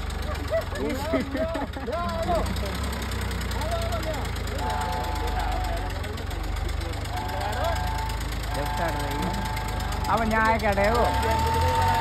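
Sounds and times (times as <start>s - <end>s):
tractor diesel engine rumbling: 0.0s - 12.0s.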